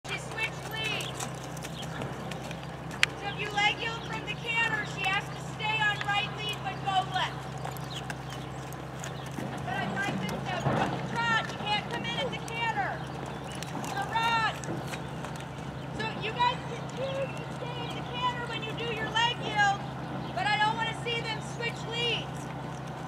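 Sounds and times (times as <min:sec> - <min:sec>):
horse hooves trotting on dirt: 0:00.0 - 0:23.0
steady low hum: 0:00.0 - 0:23.0.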